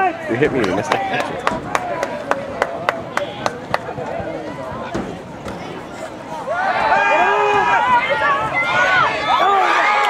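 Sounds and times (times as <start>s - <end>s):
sharp claps: 0.6s - 3.9s.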